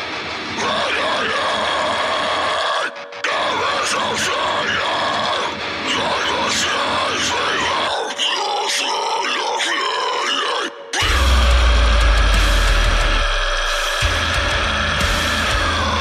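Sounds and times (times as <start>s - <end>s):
heavy metal music: 0.0s - 16.0s.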